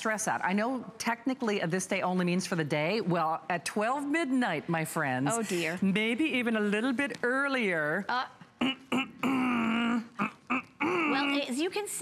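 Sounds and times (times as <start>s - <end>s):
short vocal sounds: 8.6s - 11.5s
woman's drawn-out vocal sound: 10.8s - 11.6s.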